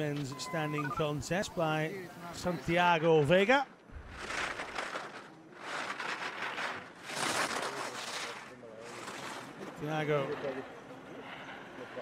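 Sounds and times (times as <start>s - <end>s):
ski edges scraping on snow: 4.0s - 9.7s.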